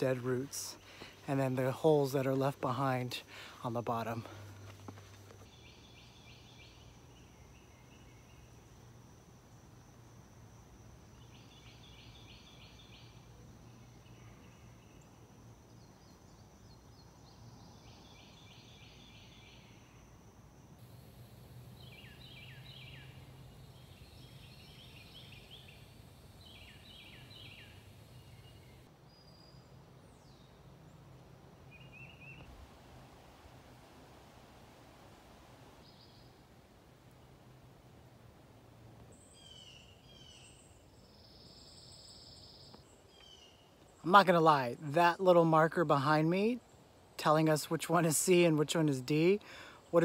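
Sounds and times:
songbird singing: 0.0 - 50.0
steady high hiss: 0.0 - 50.0
woodland ambience: 0.0 - 50.0.

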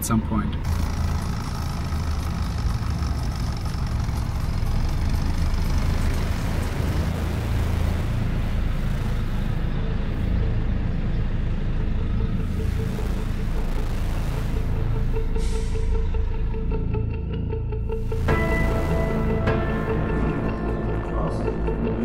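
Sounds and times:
vehicle engine low rumble: 0.0 - 22.0.

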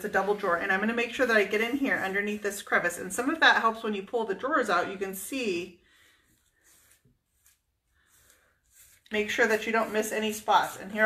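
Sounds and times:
paintbrush swishes on wood: 6.3 - 11.0.

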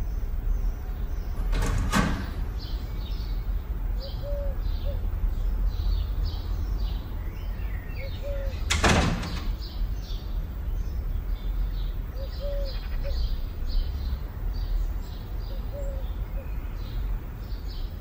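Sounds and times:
small birds chirping: 0.0 - 18.0
house door moving: 1.4 - 2.6, 8.6 - 9.6.

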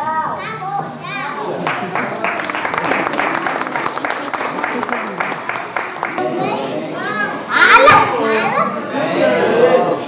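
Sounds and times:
children's voices overlapping: 0.0 - 1.7, 3.5 - 10.0.

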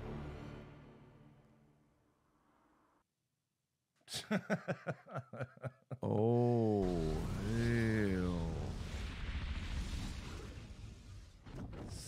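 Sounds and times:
fire blast rumble: 6.7 - 12.0.

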